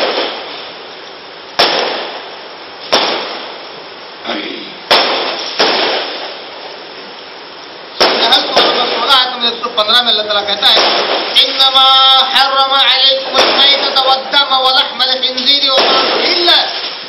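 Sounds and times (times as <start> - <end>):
steady hiss: 0.0 - 17.0.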